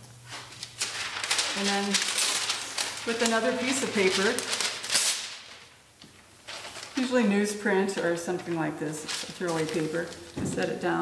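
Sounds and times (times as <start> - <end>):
paper rustling: 0.2 - 10.8
paper handled: 0.2 - 10.9.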